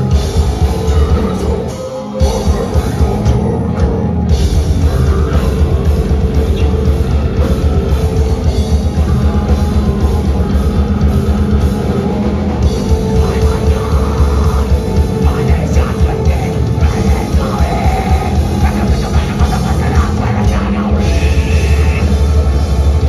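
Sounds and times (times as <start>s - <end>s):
distorted guitars and bass: 0.0s - 23.0s
fast dense drumming: 0.0s - 23.0s.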